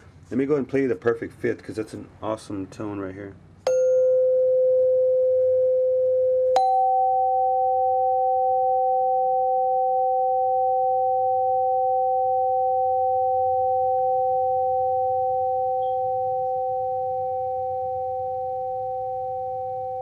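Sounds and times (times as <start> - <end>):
metal tubes ringing pure tones: 3.7 - 20.0.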